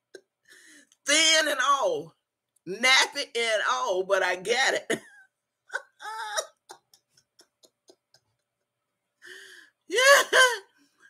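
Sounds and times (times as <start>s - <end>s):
woman laughing: 5.7s - 8.7s.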